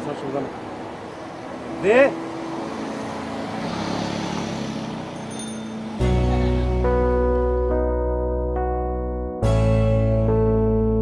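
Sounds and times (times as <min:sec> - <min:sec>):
steady traffic noise: 0:00.0 - 0:08.2.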